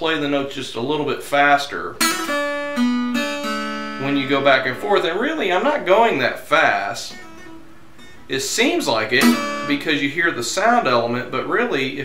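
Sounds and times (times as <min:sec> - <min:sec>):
acoustic guitar notes: 0:01.9 - 0:11.6.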